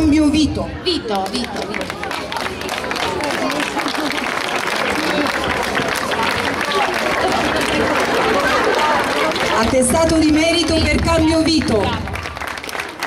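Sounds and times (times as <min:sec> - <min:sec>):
audience applauding: 0:01.2 - 0:13.0.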